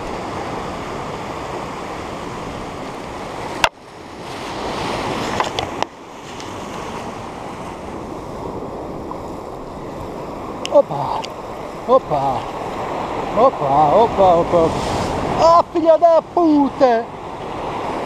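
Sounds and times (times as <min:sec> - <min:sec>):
surf breaking over rocks: 0:00.0 - 0:18.0.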